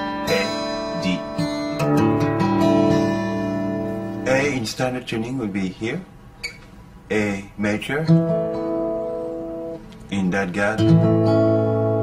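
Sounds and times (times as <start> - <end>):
acoustic guitar chord ringing: 0.0 - 4.9, 8.0 - 12.0.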